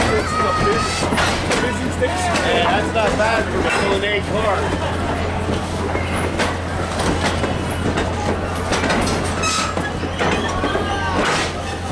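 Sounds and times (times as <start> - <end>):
train rumbling past: 0.0 - 11.9
train wheels clattering over rail joints: 0.0 - 11.9.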